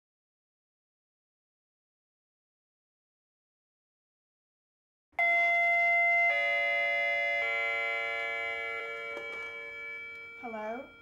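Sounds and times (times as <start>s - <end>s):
doorbell chime descending notes: 5.2s - 11.0s.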